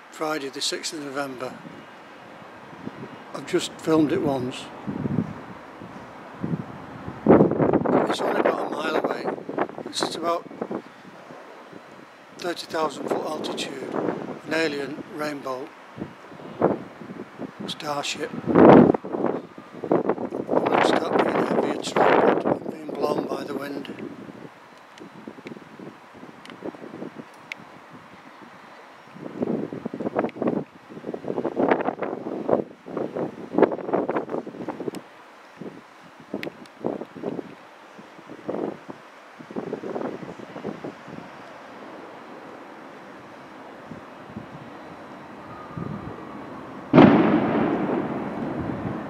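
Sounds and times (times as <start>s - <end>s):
wind buffeting microphone: 1.0s - 49.0s
loud thump: 46.9s - 48.3s.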